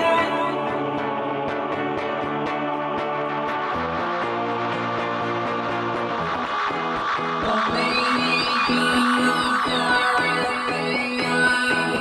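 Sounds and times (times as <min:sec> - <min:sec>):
electric guitar picked chords: 0:00.0 - 0:12.0.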